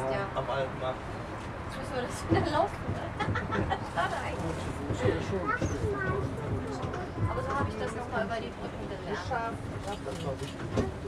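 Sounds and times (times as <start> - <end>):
people talking indistinctly: 0.0 - 11.0
vehicle engine rumble: 0.3 - 11.0.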